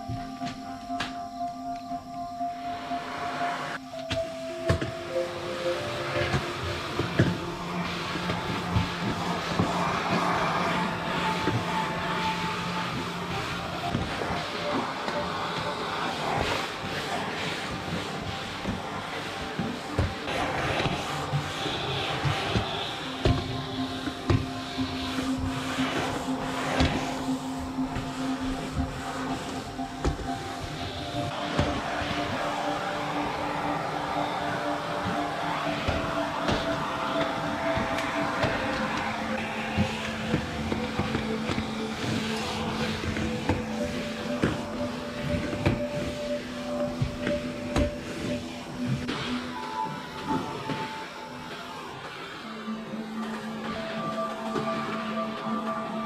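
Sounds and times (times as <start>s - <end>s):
calm background music: 0.0s - 56.0s
vacuum cleaner suction: 2.8s - 56.0s.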